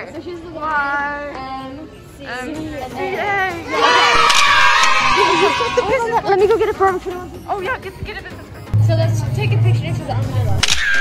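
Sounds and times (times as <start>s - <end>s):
girls shouting and cheering: 3.0s - 6.3s
loud group yell: 3.7s - 5.9s.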